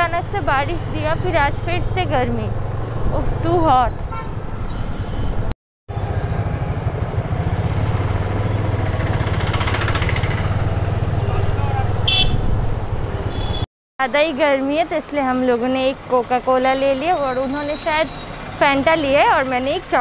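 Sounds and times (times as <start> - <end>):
road and wind noise: 0.0 - 20.0.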